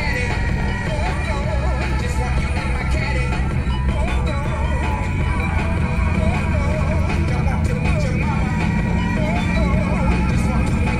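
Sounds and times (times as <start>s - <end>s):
vehicle driving on dirt road: 0.0s - 10.9s.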